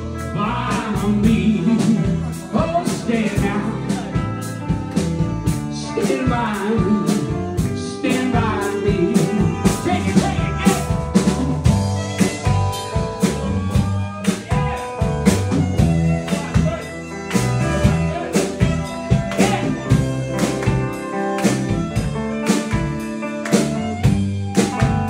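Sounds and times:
bass line: 0.0 - 25.0
drum kit beat: 0.0 - 25.0
electric guitar: 0.0 - 25.0.

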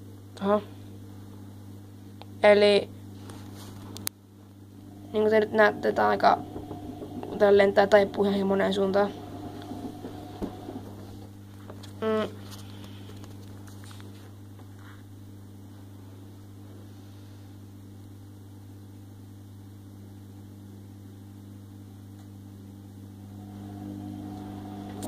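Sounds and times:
low electrical hum: 0.0 - 25.0.

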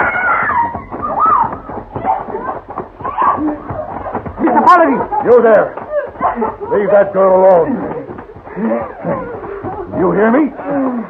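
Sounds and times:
woman screaming: 0.0 - 3.6.

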